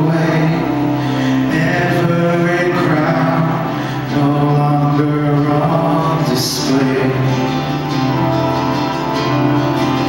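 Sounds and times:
worship band playing slow song: 0.0s - 10.0s.

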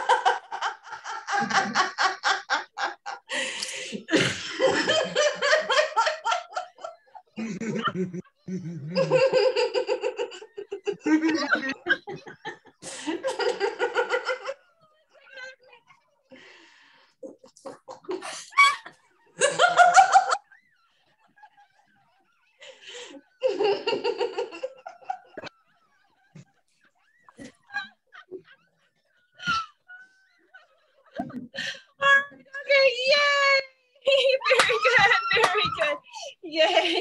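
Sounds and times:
woman laughing: 0.0s - 3.4s, 4.0s - 14.6s, 27.3s - 37.0s
girl laughing: 29.4s - 37.0s.

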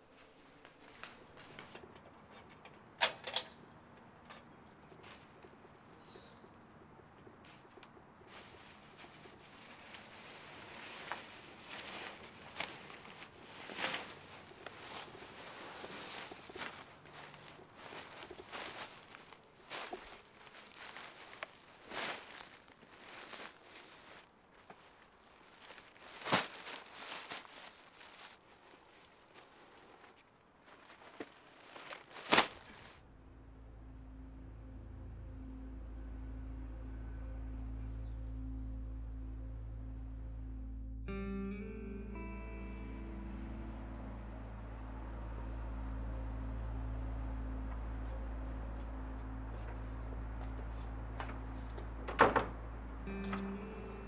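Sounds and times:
low steady background noise: 0.0s - 54.0s
footsteps: 7.2s - 33.0s.

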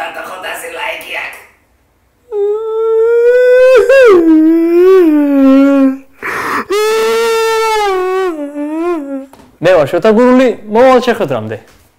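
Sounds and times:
man howling: 2.3s - 9.3s
sharp breath in: 6.2s - 6.8s.

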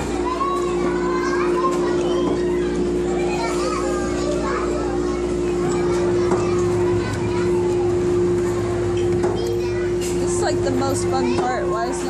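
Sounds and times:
children chattering and calling: 0.0s - 12.0s
steady hum: 0.0s - 12.0s.

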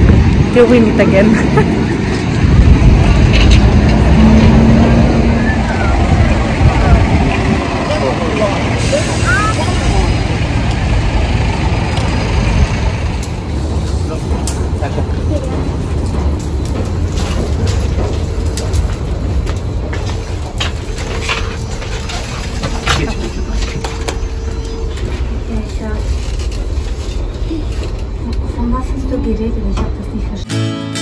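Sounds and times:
low rumble of traffic: 0.0s - 30.5s.

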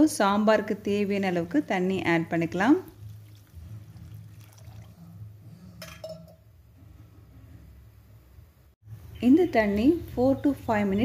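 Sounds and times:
liquid pouring into a pan: 2.9s - 5.0s.

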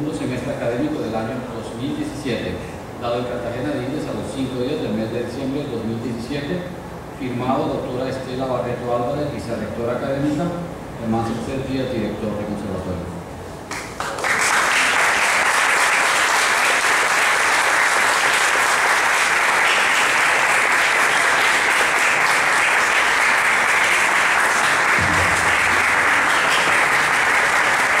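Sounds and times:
audience applauding: 13.7s - 28.0s.

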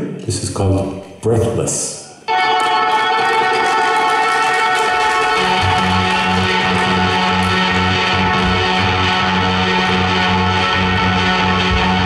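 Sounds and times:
sustained guitar chord: 2.3s - 12.0s
pulsing low bass line: 5.4s - 12.0s.

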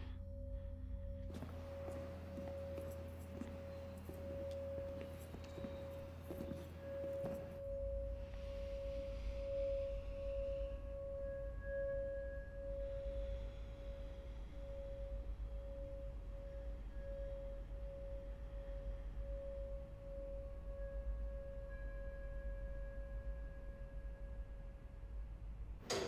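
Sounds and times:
sustained ringing tone: 0.0s - 25.2s.

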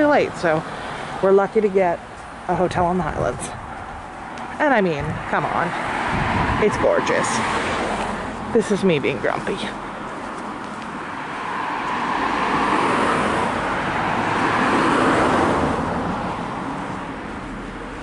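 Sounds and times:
cars passing: 0.0s - 18.0s.

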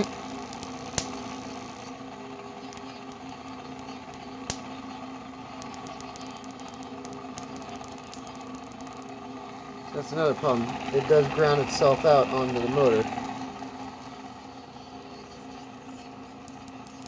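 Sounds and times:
static sparks snapping: 0.0s - 14.3s, 15.9s - 17.0s
small fan motor humming: 0.0s - 17.0s.

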